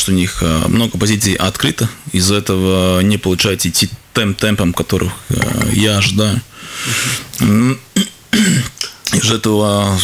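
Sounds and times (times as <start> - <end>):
man breathing: 6.5 - 7.4.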